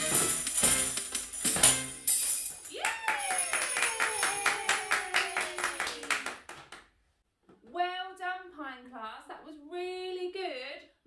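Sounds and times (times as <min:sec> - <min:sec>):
people clapping: 0:02.7 - 0:06.9.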